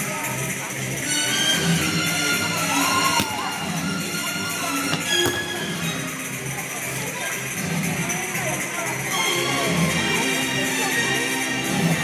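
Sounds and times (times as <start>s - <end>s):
music playing: 0.4s - 12.0s.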